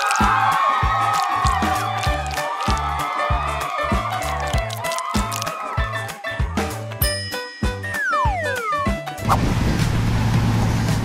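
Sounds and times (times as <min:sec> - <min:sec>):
boat engine hum: 0:09.2 - 0:11.0.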